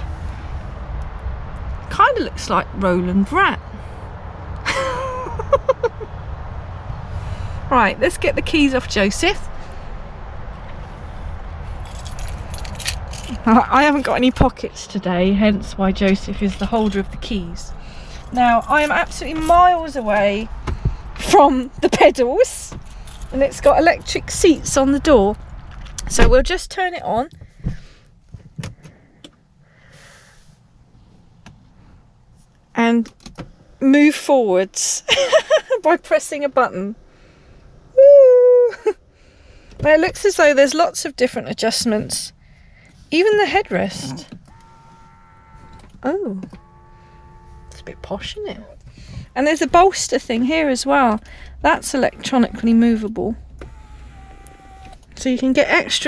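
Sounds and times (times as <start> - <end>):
low steady rumble: 0.0 - 56.0
high-pitched voice laughing: 4.6 - 6.1, 38.0 - 39.0.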